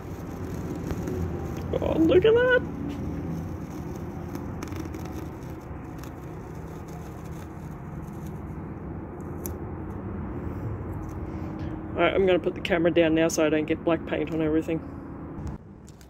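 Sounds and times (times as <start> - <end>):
low background hum and rumble: 0.0 - 16.0.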